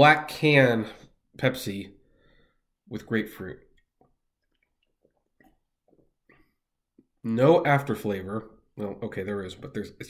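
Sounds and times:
sips and swallows: 3.8 - 7.2.

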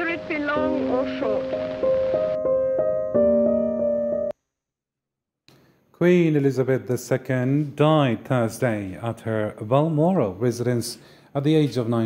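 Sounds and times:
held keyboard chord: 0.0 - 4.4.

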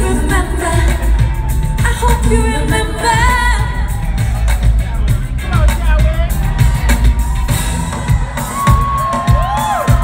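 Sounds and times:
woman singing: 0.0 - 4.0
heavy boomy bass: 0.0 - 8.4
live pop concert music: 0.0 - 10.0.

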